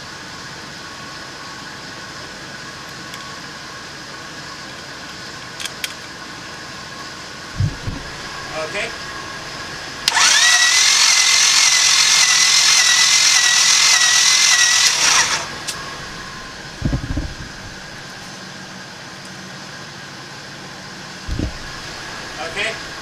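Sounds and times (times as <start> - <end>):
dull thumps: 7.6 - 8.2, 21.3 - 21.8
starter motor cranking engine: 10.0 - 18.2, 21.3 - 23.0.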